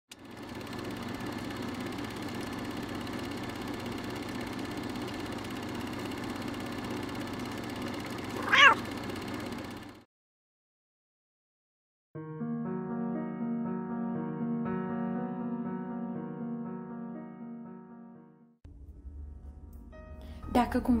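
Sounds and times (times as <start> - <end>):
cat meow: 8.4 - 8.8.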